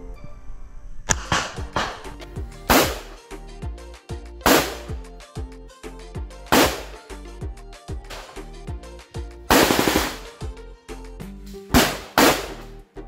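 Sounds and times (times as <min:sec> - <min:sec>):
background music with steady beat: 0:01.1 - 0:13.0
pistol shots: 0:02.7 - 0:03.2, 0:04.5 - 0:05.0, 0:06.5 - 0:07.0, 0:09.5 - 0:10.4, 0:11.7 - 0:12.7.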